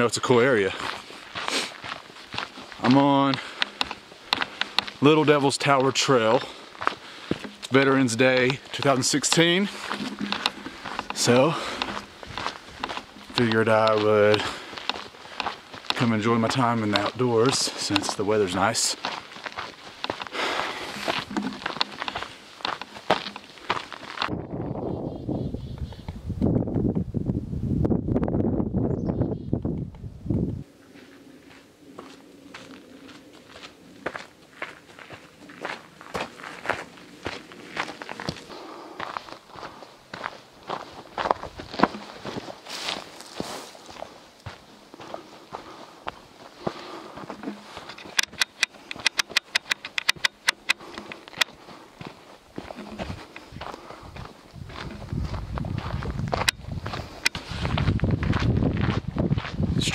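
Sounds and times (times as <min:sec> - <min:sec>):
footsteps on a trail: 0:00.0 - 0:24.4, 0:29.9 - 0:59.9
sharp ticks: 0:47.9 - 0:51.5.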